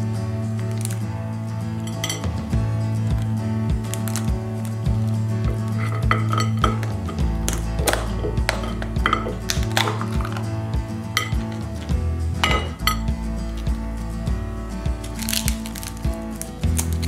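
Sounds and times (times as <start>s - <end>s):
background music with a beat: 0.0s - 17.0s
crab shell cracking: 3.8s - 4.8s, 6.8s - 10.5s, 15.0s - 17.0s.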